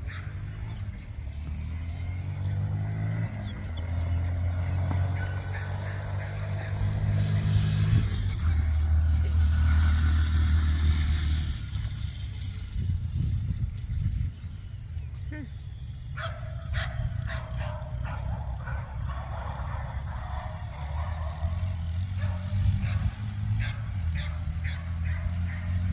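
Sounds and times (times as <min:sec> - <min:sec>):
motorcycle engine running: 0:00.0 - 0:25.9.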